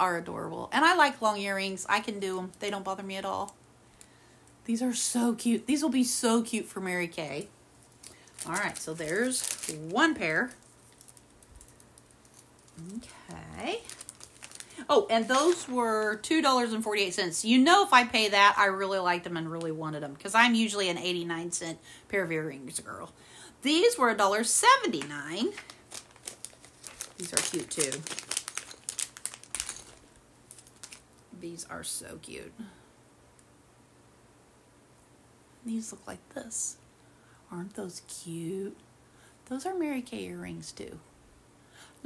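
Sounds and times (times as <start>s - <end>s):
plastic bag crinkling: 7.2s - 16.8s, 23.8s - 31.2s.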